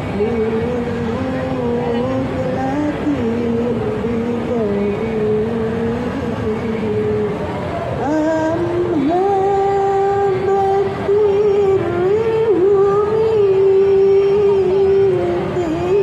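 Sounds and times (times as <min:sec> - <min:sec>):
woman chanting through loudspeaker: 0:00.1 - 0:07.3, 0:08.0 - 0:16.0.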